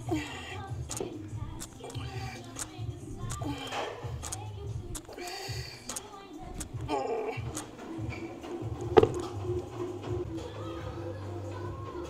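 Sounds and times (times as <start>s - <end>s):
dumbbells clacking on floor: 9.0s - 9.4s.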